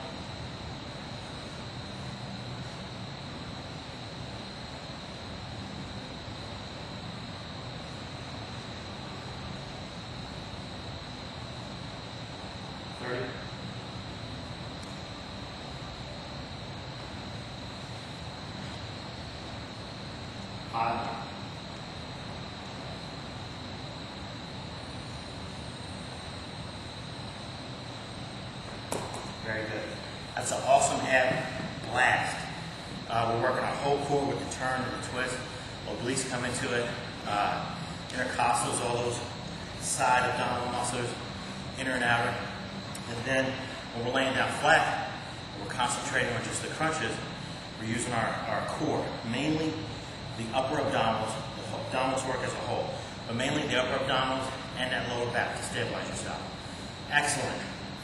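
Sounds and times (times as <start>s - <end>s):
high-pitched whine: 0.0s - 58.0s
short knock: 28.9s - 29.3s.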